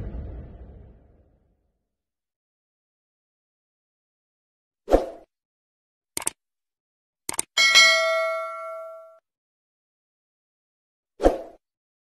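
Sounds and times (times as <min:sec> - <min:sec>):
mouse clicks: 0:06.2 - 0:06.4
notification bell ding: 0:07.6 - 0:09.2.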